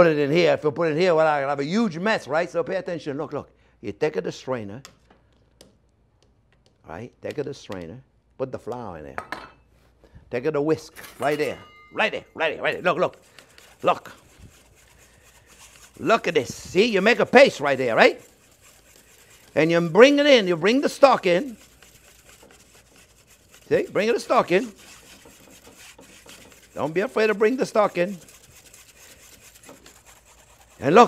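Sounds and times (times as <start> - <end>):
wire whisk swishing in strainer: 12.7 - 31.0.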